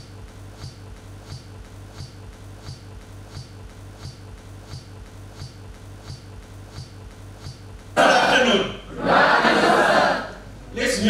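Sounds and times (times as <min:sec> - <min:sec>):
man clearing throat into microphone: 0:08.0 - 0:08.5.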